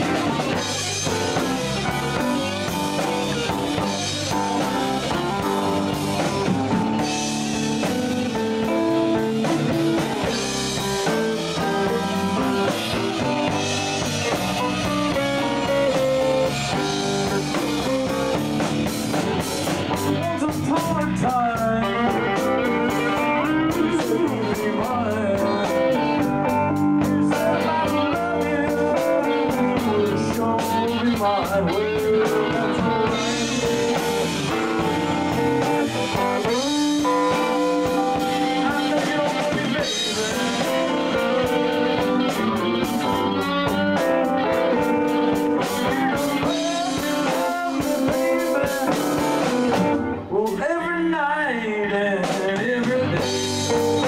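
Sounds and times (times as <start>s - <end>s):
electric guitar bending notes: 0.0s - 50.5s, 52.6s - 54.0s
live blues-rock band: 0.0s - 54.0s.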